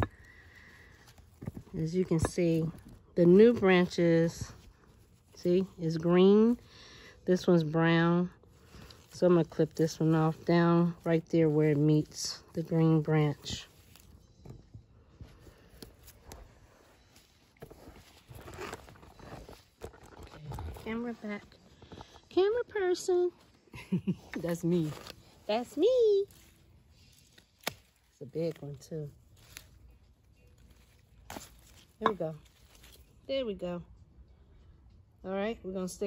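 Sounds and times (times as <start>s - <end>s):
faint plant rustling: 0.0s - 34.7s
pruning clippers snipping: 27.4s - 28.7s.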